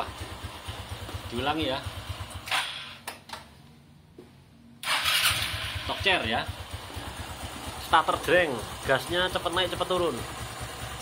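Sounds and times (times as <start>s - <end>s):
scooter engine idling: 0.0s - 3.0s, 4.9s - 11.0s
electric starter cranking: 4.8s - 5.9s.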